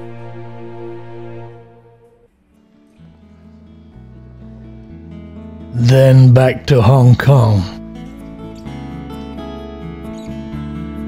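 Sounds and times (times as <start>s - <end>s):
acoustic guitar music: 2.2s - 11.0s.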